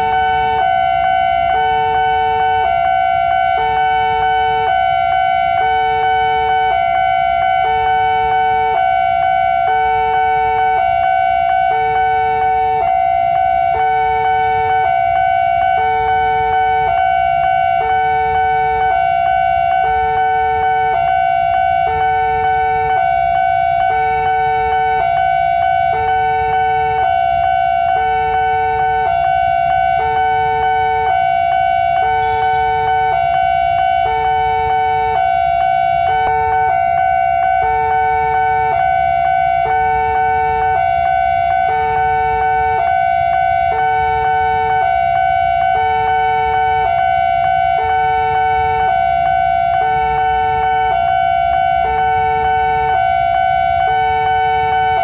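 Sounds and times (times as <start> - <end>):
level crossing alarm steady tone: 0.0 - 55.0
low traffic rumble: 0.0 - 55.0
two-note alarm signal: 0.0 - 55.0.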